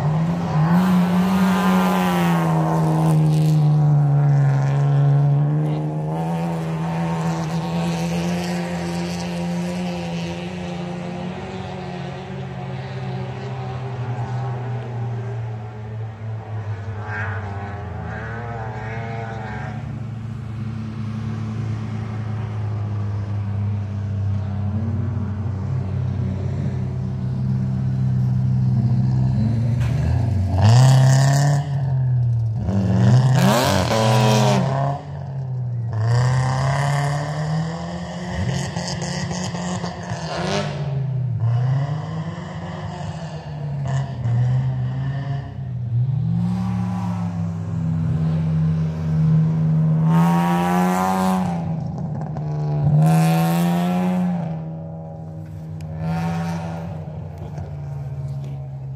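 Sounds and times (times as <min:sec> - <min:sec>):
race car engines revving: 0:00.0 - 0:58.9.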